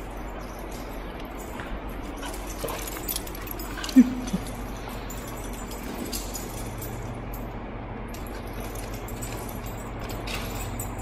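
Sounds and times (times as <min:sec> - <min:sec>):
dogs playing: 0:00.0 - 0:11.0.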